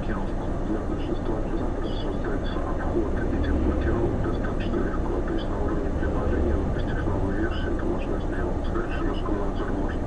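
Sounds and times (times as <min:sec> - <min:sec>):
car engine drone and road noise: 0:00.0 - 0:10.0
radio voice talking: 0:00.0 - 0:10.0.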